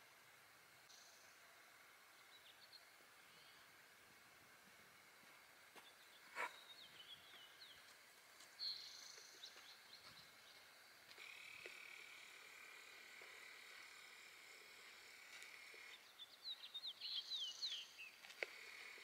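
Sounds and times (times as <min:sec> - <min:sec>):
birds chirping: 0:00.8 - 0:19.0.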